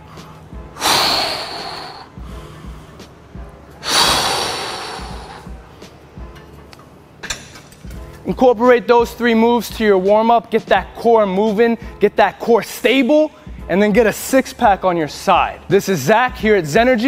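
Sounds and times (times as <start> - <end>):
faint background music: 0.0 - 17.0
person exhaling forcefully: 0.8 - 2.2, 3.8 - 5.5.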